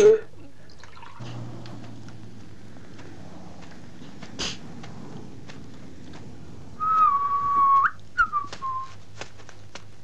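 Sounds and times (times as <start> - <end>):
person whistling: 6.8 - 9.0.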